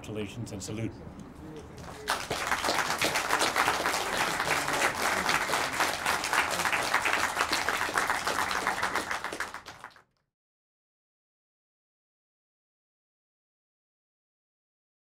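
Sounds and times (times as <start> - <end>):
audience applauding: 1.8 - 10.0.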